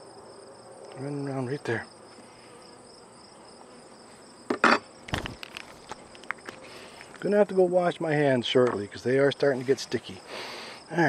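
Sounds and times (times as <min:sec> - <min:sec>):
crickets chirring: 0:00.0 - 0:11.0
honeybees humming: 0:00.0 - 0:11.0
loud handling noises: 0:04.5 - 0:07.2.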